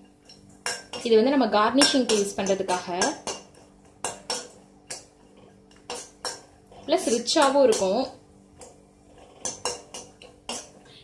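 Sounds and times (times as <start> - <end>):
metal spoon scraping steel pan: 0.0 - 11.0.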